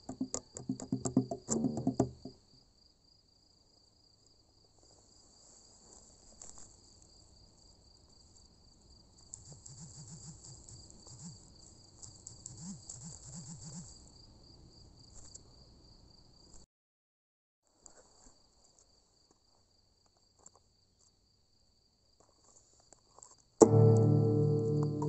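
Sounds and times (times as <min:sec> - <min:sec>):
crickets chirring: 0:04.8 - 0:16.6
faint low wavering sounds: 0:23.6 - 0:25.0.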